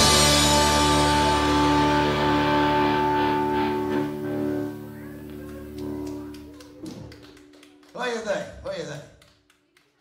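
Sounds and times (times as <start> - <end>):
rock band chord ringing: 0.0 - 5.1.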